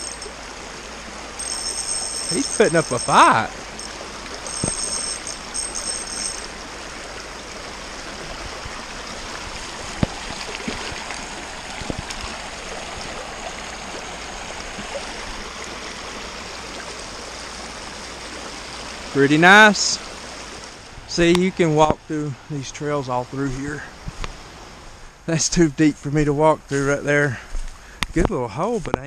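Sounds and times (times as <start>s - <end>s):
creek water rushing over rocks: 0.0s - 25.0s.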